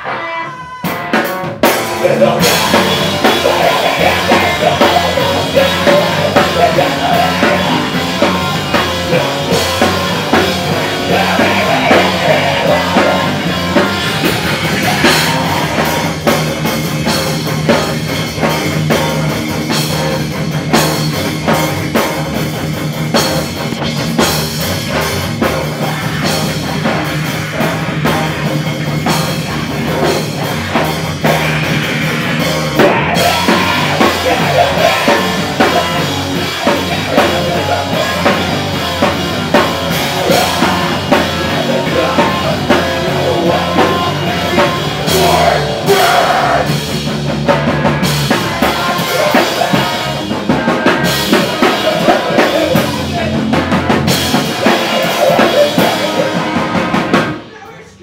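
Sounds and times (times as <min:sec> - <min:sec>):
drum kit pounding: 0:00.0 - 0:57.8
distorted guitar: 0:00.0 - 0:58.0
live rock band: 0:00.0 - 0:58.0.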